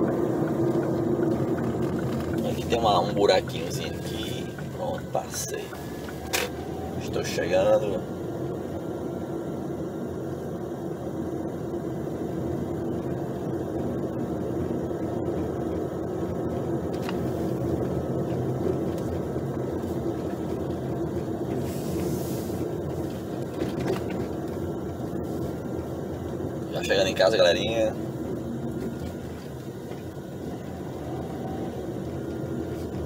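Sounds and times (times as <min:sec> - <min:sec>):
car cabin engine and tyre drone: 0:00.0 - 0:33.0
brief hiss: 0:21.6 - 0:22.7.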